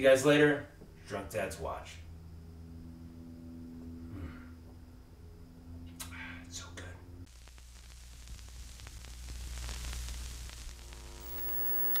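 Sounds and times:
low electrical hum: 0.0s - 12.0s
television static hiss: 7.3s - 12.0s
steady high tones: 11.2s - 12.0s.

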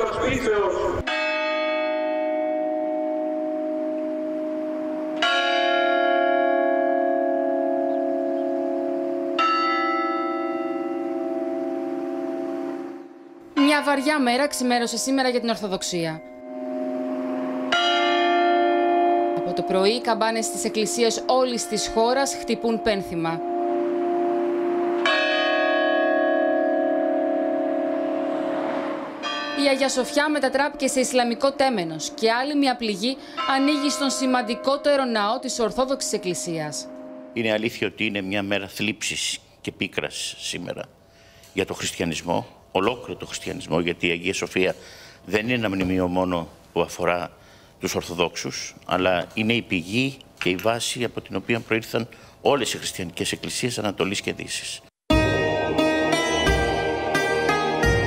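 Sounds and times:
church bell tolling: 0.8s - 38.9s, 55.1s - 58.0s.

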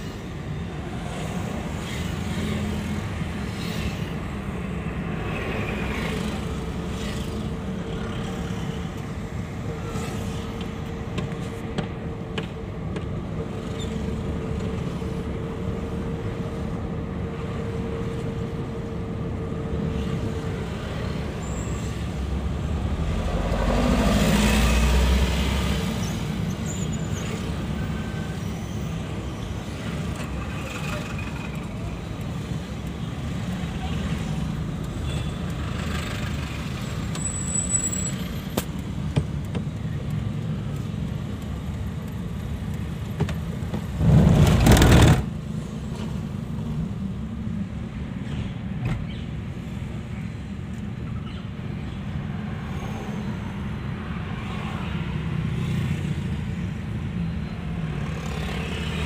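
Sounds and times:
car engine and road rumble: 0.0s - 59.0s.

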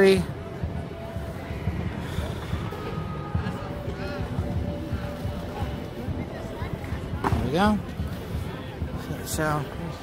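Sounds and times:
distant indistinct voices: 0.0s - 10.0s.

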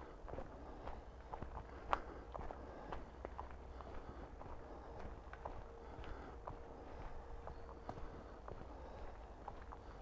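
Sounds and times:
footsteps on leafy dirt path: 0.0s - 10.0s.

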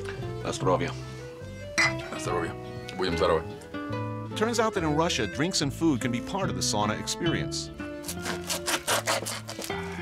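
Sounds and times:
background music: 0.0s - 10.0s
knife scraping dried fish: 8.0s - 9.9s.

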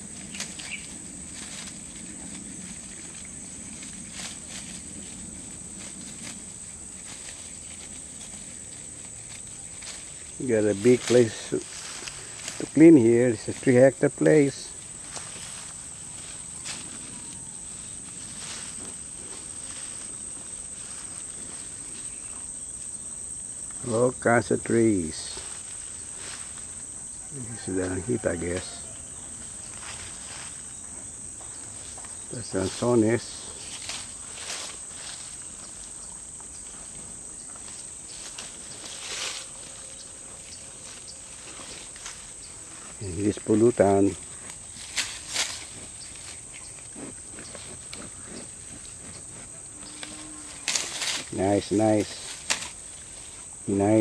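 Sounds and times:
faint footsteps in grass: 0.0s - 23.1s, 23.7s - 54.0s
high-pitched insect chorus: 0.0s - 54.0s.

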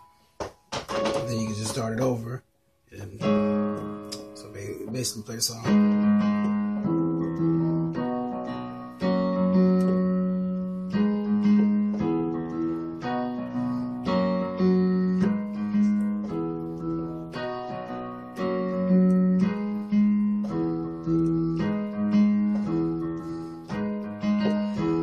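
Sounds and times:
piano chords: 0.0s - 25.0s.

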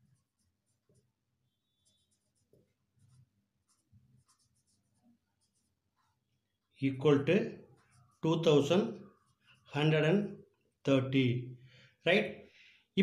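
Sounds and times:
marker pen scratching on paper: 0.0s - 10.9s.

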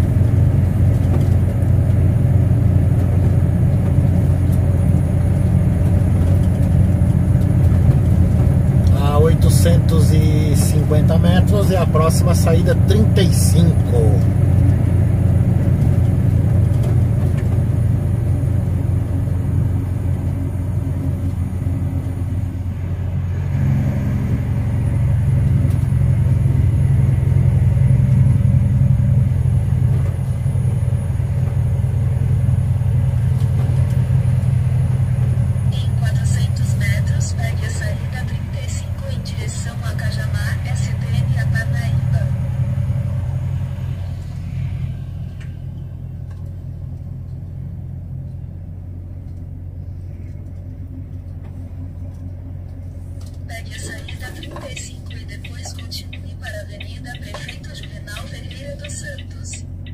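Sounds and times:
truck diesel engine drone: 0.0s - 59.9s.

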